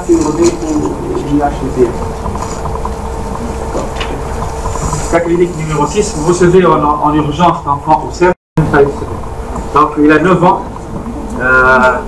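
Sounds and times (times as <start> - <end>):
faint hum: 0.0 - 12.0
low room noise rumble: 0.0 - 12.0.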